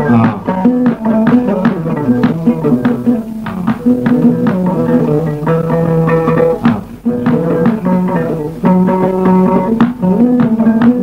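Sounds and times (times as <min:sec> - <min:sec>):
plucked string instrument music: 0:00.0 - 0:11.0.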